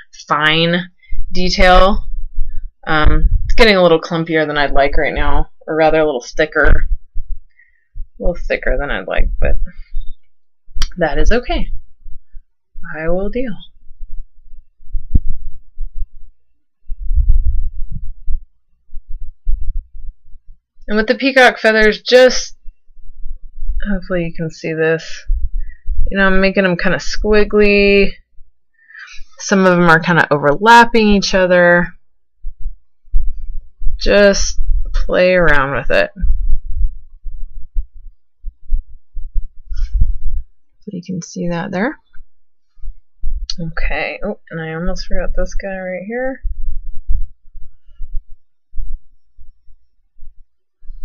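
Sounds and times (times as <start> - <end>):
low thuds and rumbling: 0.6 - 5.6, 6.6 - 21.1, 25.2 - 28.6, 31.9 - 40.8, 46.2 - 51.0.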